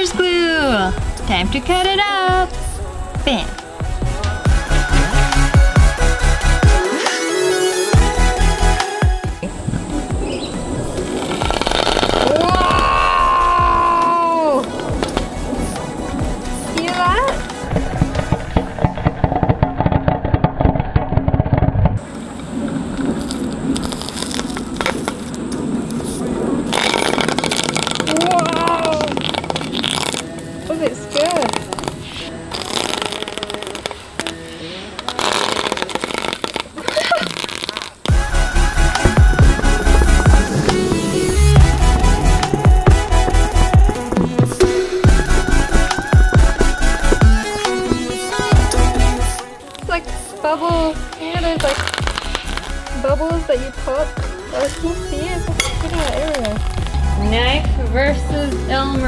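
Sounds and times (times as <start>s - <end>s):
electronic music with beat: 2.2s - 18.8s, 38.1s - 59.0s.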